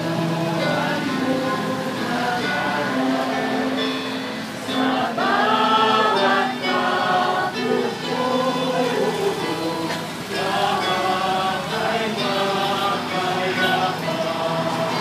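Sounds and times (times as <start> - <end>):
choir singing a hymn: 0.0 - 15.0.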